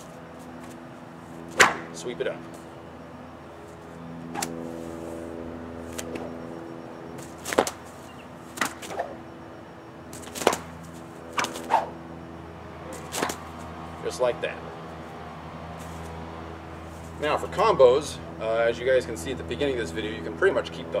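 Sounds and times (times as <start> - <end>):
bullwhip cracking: 1.5 - 2.0, 4.3 - 4.6, 7.4 - 7.8, 8.5 - 9.2, 10.1 - 12.0, 12.9 - 13.4.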